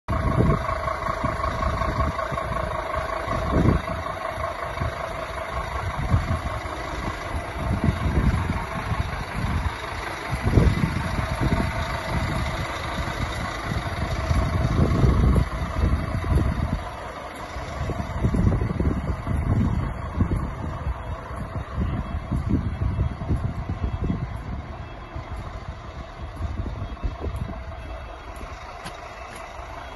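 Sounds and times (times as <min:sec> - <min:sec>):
wind buffeting microphone: 0:00.1 - 0:29.9.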